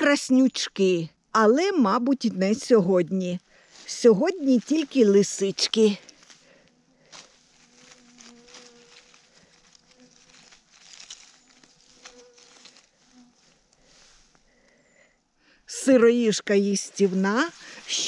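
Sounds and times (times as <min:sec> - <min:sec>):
rustles in leaf litter: 0:03.4 - 0:14.4, 0:16.7 - 0:18.0
fly buzzing: 0:05.8 - 0:14.9.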